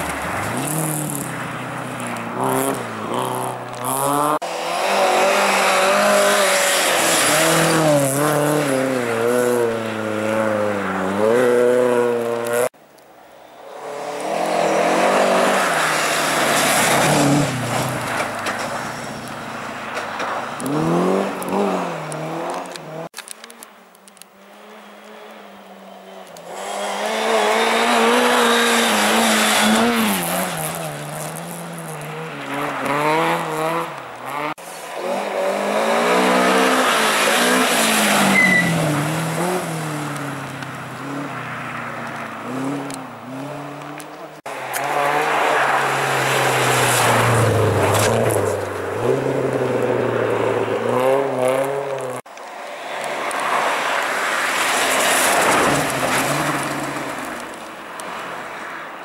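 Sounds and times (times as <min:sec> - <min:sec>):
rally car engines revving past: 0:00.0 - 0:12.8, 0:13.7 - 0:23.1, 0:24.5 - 0:58.7.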